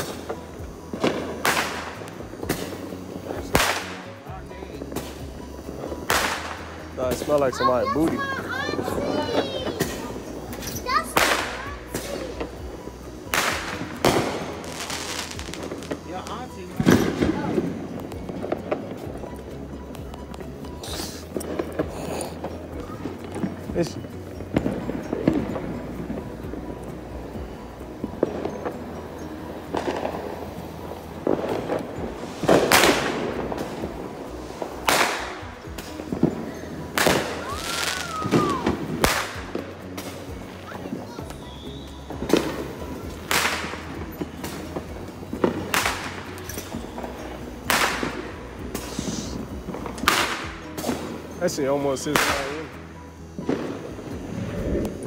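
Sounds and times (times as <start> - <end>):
fireworks bangs: 0.0 - 52.8, 53.4 - 55.0.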